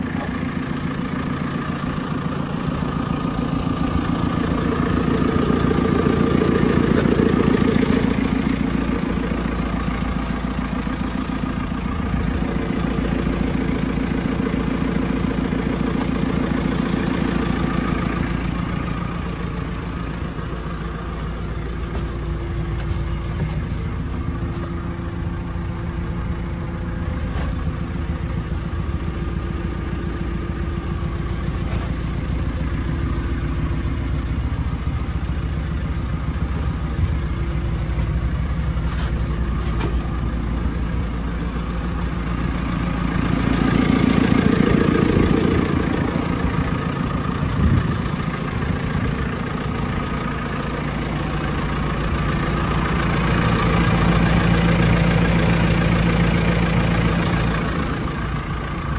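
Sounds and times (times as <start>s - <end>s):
diesel engine idling: 0.0s - 58.9s.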